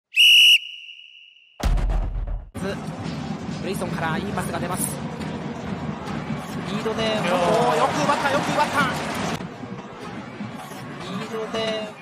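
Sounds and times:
whistle blast: 0.1 - 1.6.

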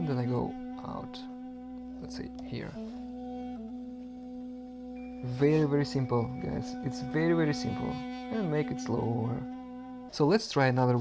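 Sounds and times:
recorded song long held note: 0.0 - 11.0.

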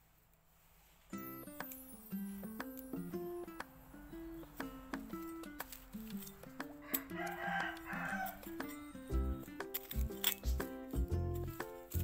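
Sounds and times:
background music: 1.2 - 12.0
rooster crowing: 6.7 - 9.0
bass beat: 9.1 - 9.4, 10.5 - 12.0.

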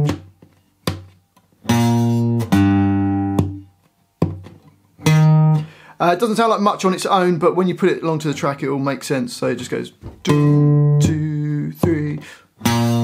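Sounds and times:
acoustic guitar picked low notes: 0.0 - 0.4, 1.7 - 3.7, 5.0 - 5.8, 10.2 - 13.0.

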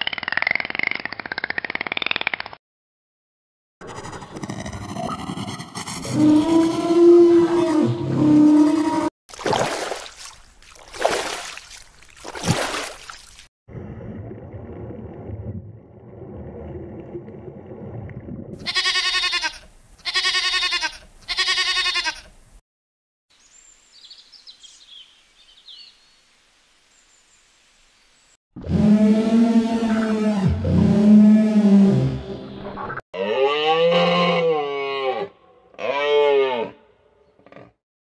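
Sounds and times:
dinosaur roar sound effect: 5.9 - 9.1
goat bleating: 18.6 - 22.3.

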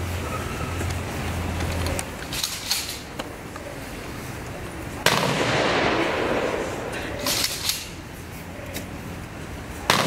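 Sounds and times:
rifle volley crack with echo: 5.0 - 7.3.

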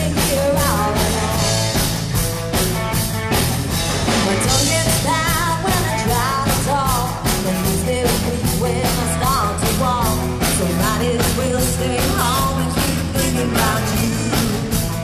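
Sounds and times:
person singing: 0.0 - 1.8, 4.1 - 15.0
bass guitar: 0.0 - 15.0
drum kit beat: 0.0 - 15.0
electric guitar: 0.0 - 15.0.

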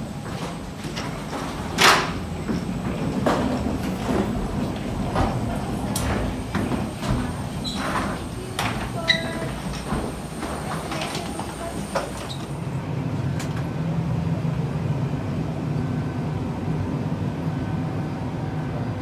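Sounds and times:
wheeled suitcase clattering: 0.0 - 12.6
cabin ventilation hum: 0.0 - 19.0
footsteps: 0.1 - 12.6.

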